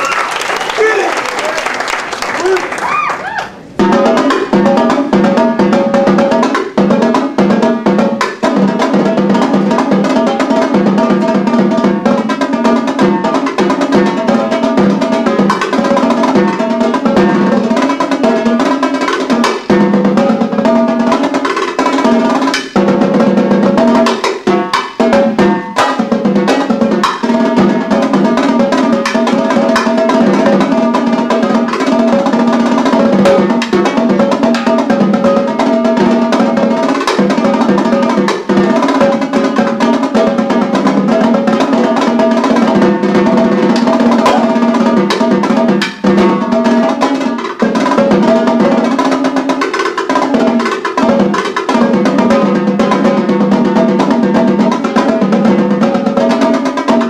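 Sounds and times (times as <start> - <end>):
marching tenor drums rolls: 3.5 - 49.5.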